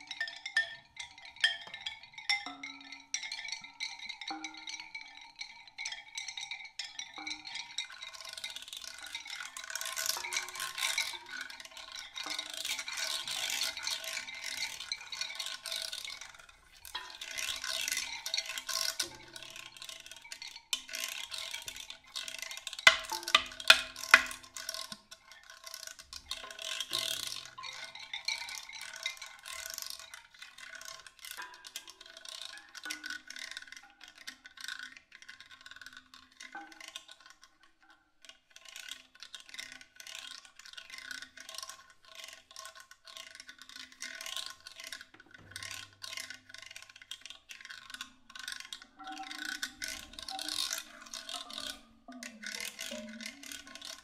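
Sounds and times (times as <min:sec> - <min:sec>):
experimental percussion music: 0:16.6 - 0:25.2, 0:48.7 - 0:54.0.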